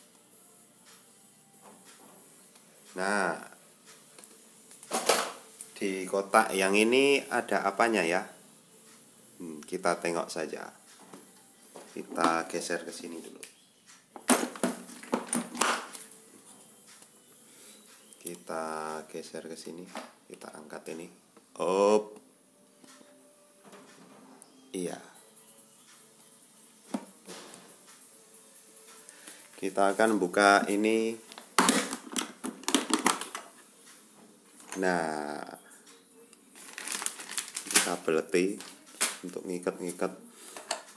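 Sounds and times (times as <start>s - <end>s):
plastic cases knocking on tiled floor: 14.2s - 15.9s, 31.6s - 33.4s.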